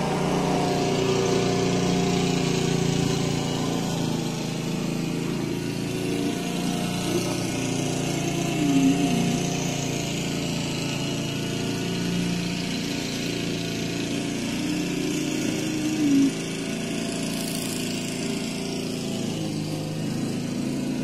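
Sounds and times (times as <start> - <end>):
lawn mower engine running: 0.0 - 21.0.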